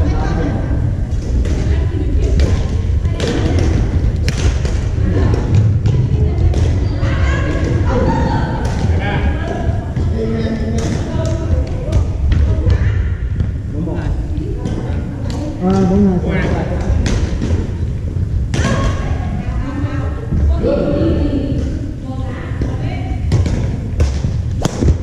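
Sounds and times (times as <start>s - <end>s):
echoing voices: 0.0s - 24.0s
rackets hitting shuttlecocks: 1.2s - 6.8s.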